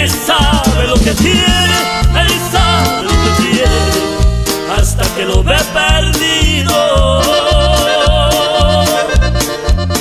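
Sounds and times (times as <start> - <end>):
accordion melody: 0.0 - 10.0
steady bass beat: 0.0 - 10.0.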